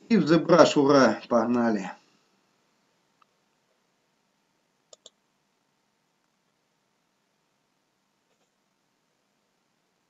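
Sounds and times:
computer mouse double click: 0:04.9 - 0:05.2.

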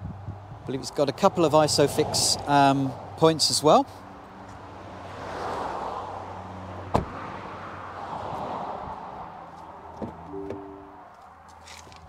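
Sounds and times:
car door shutting: 0:06.9 - 0:07.2, 0:10.0 - 0:10.9.

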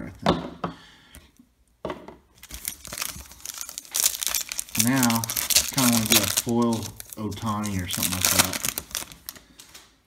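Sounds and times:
plastic wrapper crinkling and tearing: 0:02.4 - 0:09.9.

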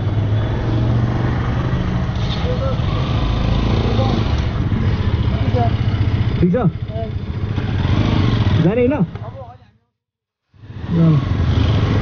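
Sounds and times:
motorcycle engine running: 0:01.4 - 0:09.6.

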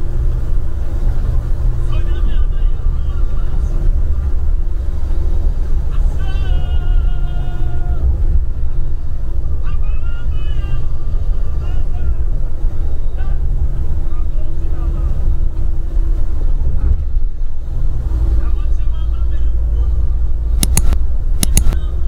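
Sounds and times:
bus rumbling on unpaved road: 0:00.0 - 0:22.0
sharp clicks: 0:20.6 - 0:21.8.

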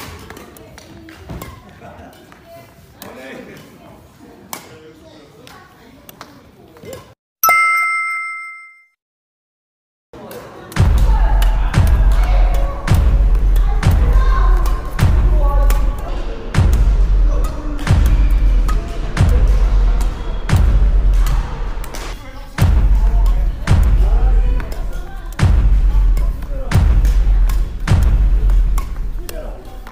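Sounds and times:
short ringing chime: 0:07.4 - 0:09.0
music with heavy bass beat: 0:10.8 - 0:24.7, 0:25.4 - 0:29.0.

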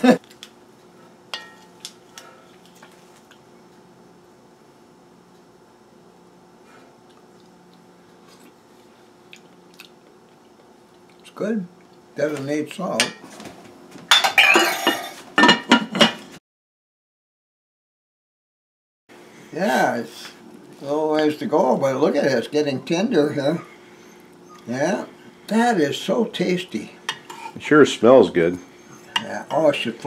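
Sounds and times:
utensil clinking on metal pot: 0:01.3 - 0:01.7.

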